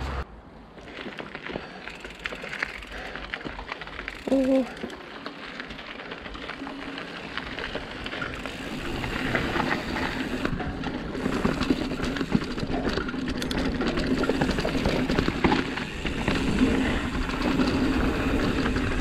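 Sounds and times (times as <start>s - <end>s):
tyres rolling over dirt and stones: 0.6s - 19.0s
bike rattling and knocking: 0.8s - 19.0s.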